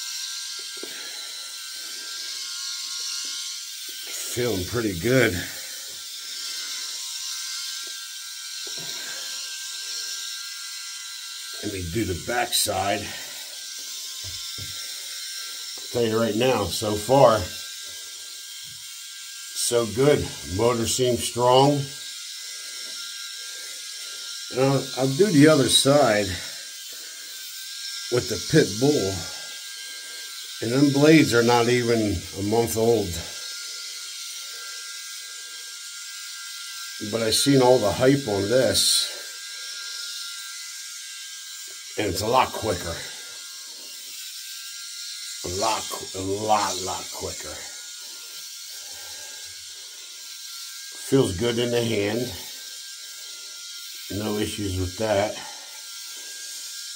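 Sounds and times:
electric shaver whirring: 0.0s - 56.9s.

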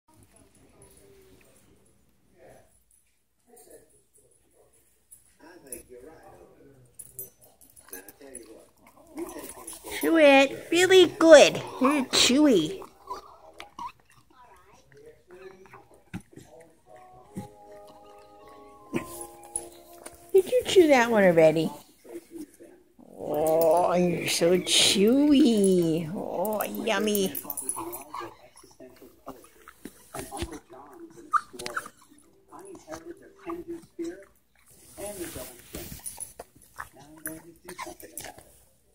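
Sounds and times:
dog chewing: 7.3s - 38.8s.

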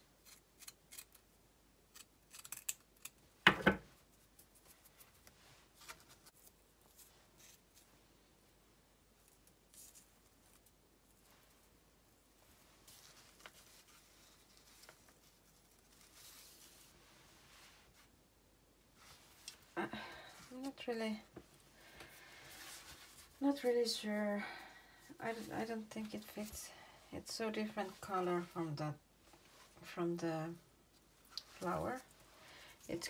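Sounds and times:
faint rustling of burlap and paper: 3.9s - 18.2s, 18.9s - 33.0s.

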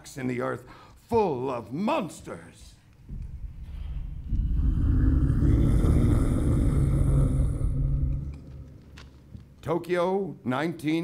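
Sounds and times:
deep rumbling explosion: 3.1s - 8.9s.

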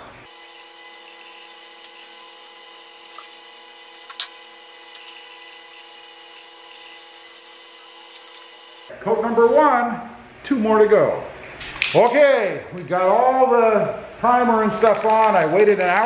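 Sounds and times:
aerosol spray can hissing: 0.3s - 8.9s.

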